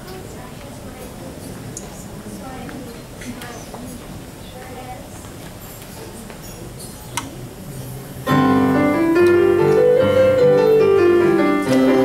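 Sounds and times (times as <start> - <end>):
electronic keyboard piano chords: 8.3 - 12.0.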